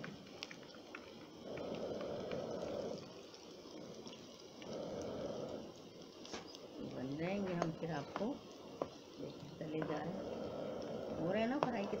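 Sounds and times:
oil sizzling with crackles: 0.0s - 12.0s.

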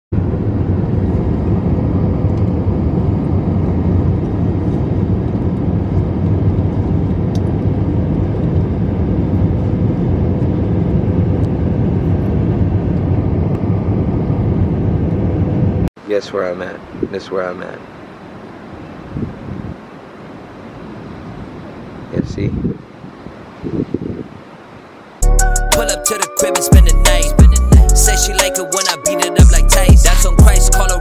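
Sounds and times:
jet airliner cabin noise: 0.2s - 25.1s.

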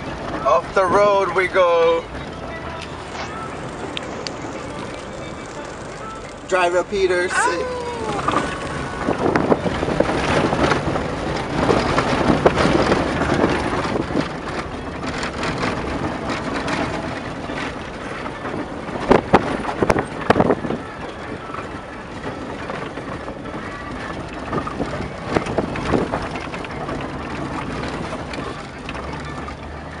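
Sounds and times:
engine and tyres rumbling: 0.0s - 30.0s
vehicle interior rattling: 0.0s - 30.0s.

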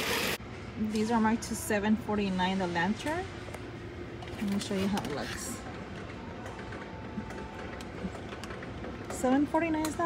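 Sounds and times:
store background noise: 0.0s - 10.0s.

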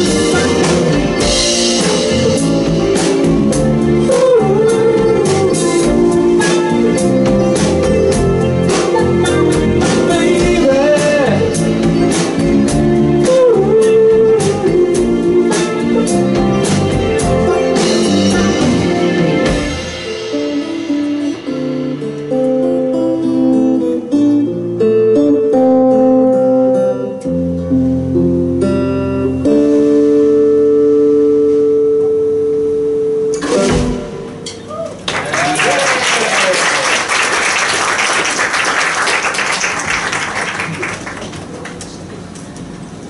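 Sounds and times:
live rock band playing: 0.0s - 34.4s
audience applauding and cheering: 34.8s - 42.1s.

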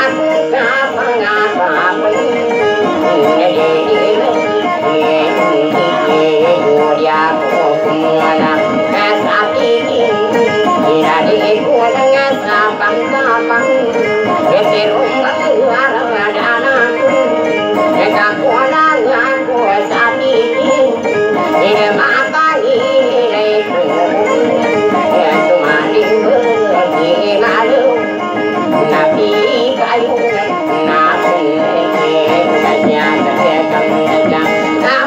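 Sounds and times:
person singing into a microphone: 0.0s - 35.0s
plucked acoustic guitars: 0.0s - 35.0s.

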